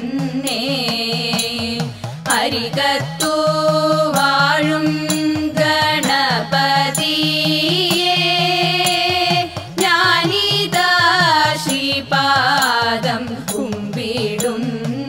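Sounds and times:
women's group singing: 0.0s - 15.0s.

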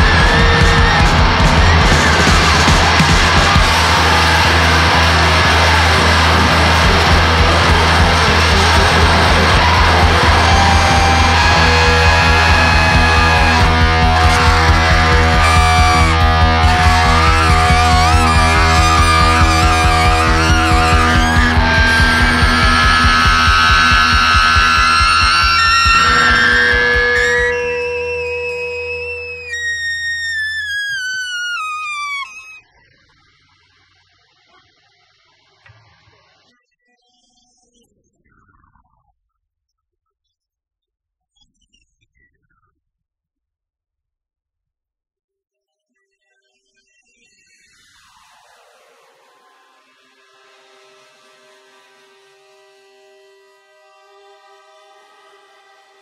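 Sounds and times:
blues-rock band music: 0.0s - 32.5s
high held sliding notes: 0.0s - 32.6s.

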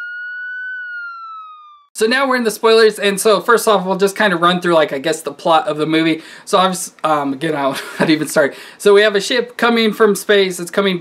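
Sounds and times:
siren wail: 0.0s - 1.9s.

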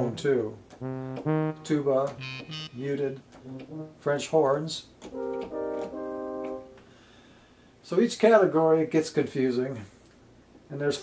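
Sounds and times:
keyboard french horn chords: 0.8s - 4.1s.

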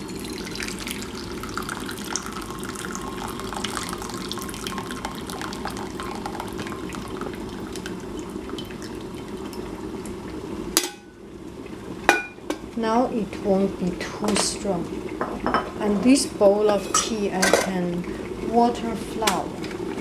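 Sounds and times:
water pouring into a bowl: 0.0s - 9.6s.

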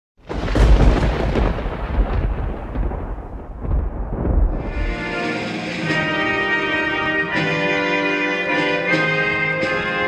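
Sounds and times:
rolling thunder rumble: 0.2s - 7.2s.

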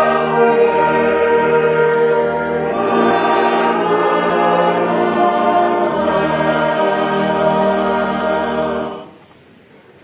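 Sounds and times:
mixed choir singing a hymn: 0.0s - 9.2s.

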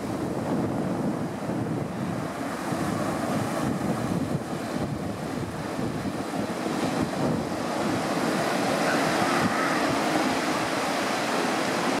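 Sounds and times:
ocean surf on sandy beach: 0.0s - 12.0s
wind rumbling on microphone: 0.0s - 12.0s.

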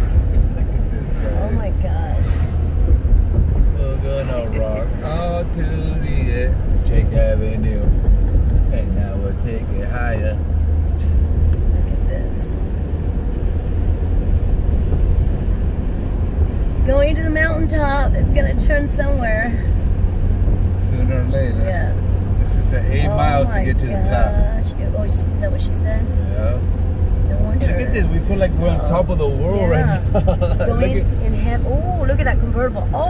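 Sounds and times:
road and engine rumble in car: 0.0s - 33.0s.

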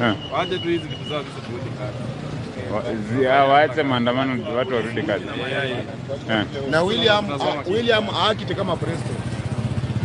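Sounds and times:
man speaking: 2.6s - 9.2s
motorcycle engine idling: 7.6s - 10.0s.

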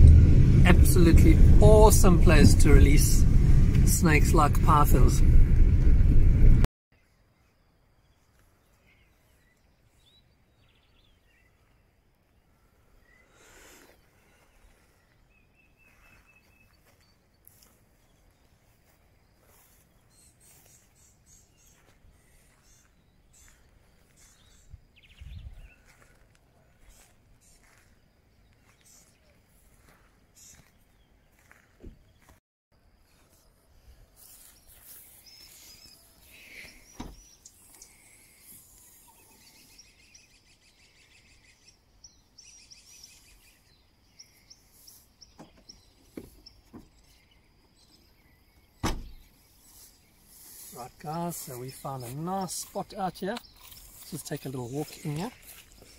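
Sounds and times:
faint outdoor ambience: 0.0s - 55.9s
bird chirps: 13.0s - 26.0s, 34.2s - 55.9s.

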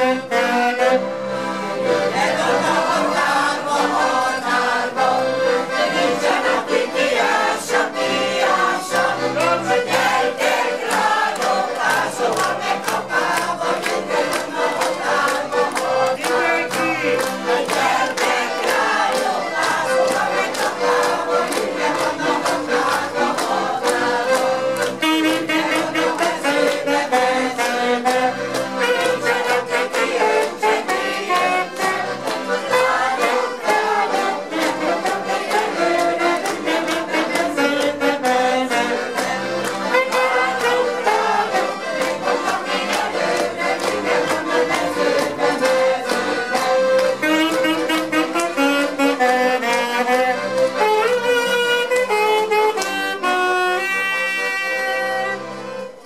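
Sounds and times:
choir singing folk song: 0.0s - 50.6s
accordions playing: 0.0s - 56.0s.

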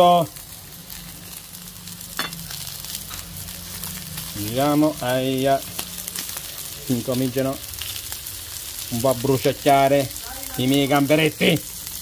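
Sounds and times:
food sizzling on a griddle: 0.0s - 12.0s.

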